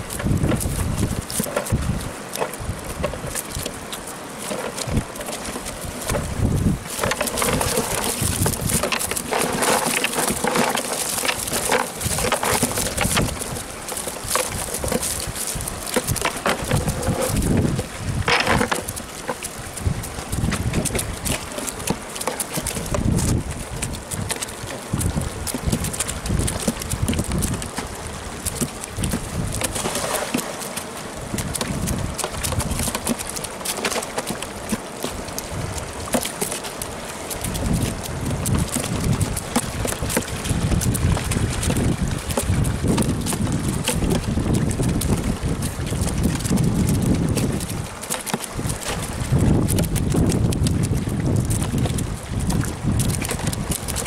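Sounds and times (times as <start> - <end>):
low wind rumble on microphone: 0.0 - 4.0, 4.8 - 22.0, 22.6 - 30.2, 31.0 - 33.3, 34.4 - 36.2, 36.8 - 54.0
prawns flicking tails in a crate: 0.0 - 54.0.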